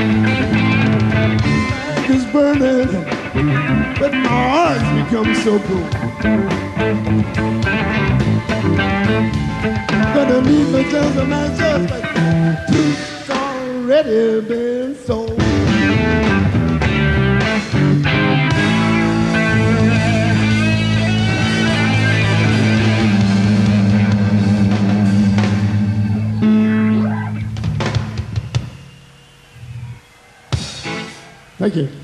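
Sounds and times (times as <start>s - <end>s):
live rock band playing: 0.0s - 31.6s.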